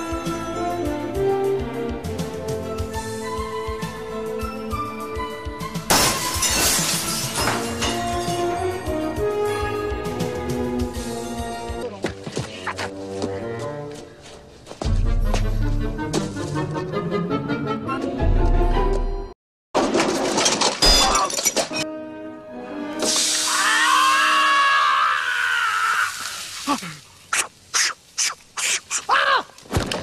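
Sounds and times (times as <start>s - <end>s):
background music: 0.0s - 19.4s, 21.5s - 24.8s
glass shattering: 5.9s - 8.5s, 19.8s - 21.8s, 23.0s - 23.6s.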